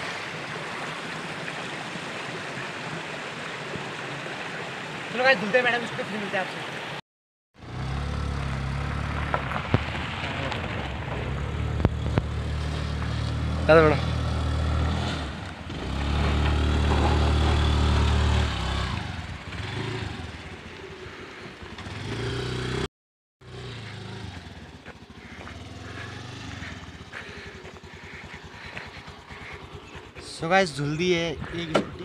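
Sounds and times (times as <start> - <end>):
motor scooter engine running: 23.4 - 32.0
quiet engine-like sound: 23.8 - 30.4.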